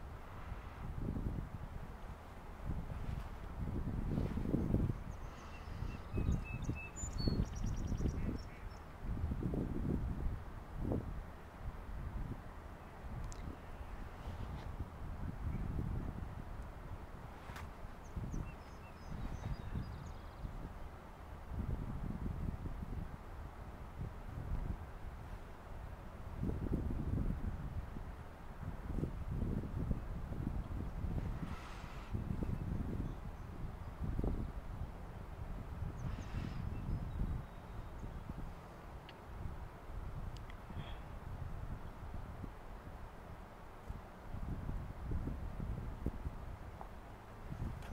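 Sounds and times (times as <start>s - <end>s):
wind buffeting microphone: 0.0s - 47.9s.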